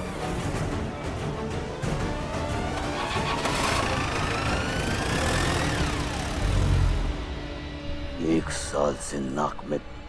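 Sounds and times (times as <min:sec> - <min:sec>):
vehicle engine revving: 0:02.1 - 0:07.8.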